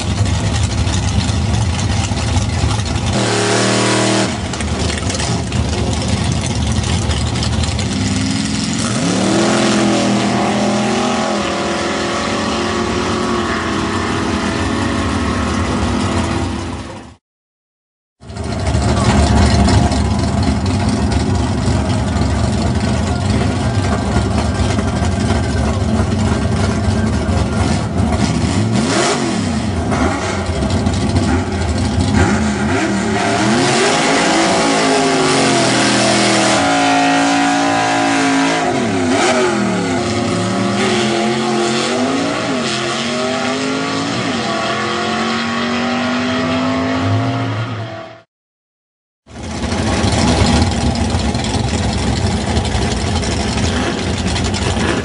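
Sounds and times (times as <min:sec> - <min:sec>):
car engine revving: 0:00.0 - 0:17.0, 0:18.3 - 0:48.2, 0:49.4 - 0:55.0.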